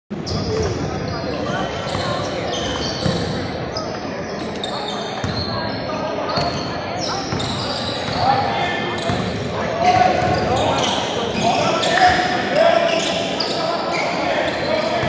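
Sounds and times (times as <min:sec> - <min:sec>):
sneakers squeaking: 0:00.2 - 0:15.0.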